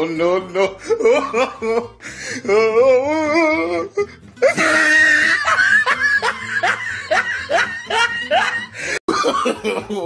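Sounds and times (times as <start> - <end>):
man laughing: 0.4 - 10.0.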